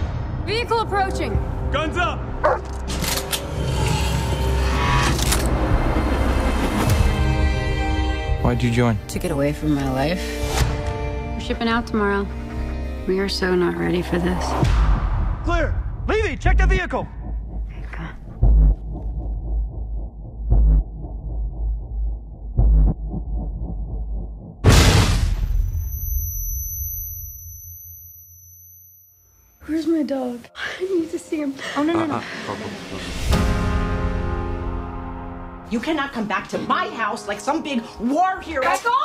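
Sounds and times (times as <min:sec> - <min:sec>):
deep heavy pulse: 0:14.4 - 0:25.6
sharp cinematic hits: 0:14.4 - 0:26.6.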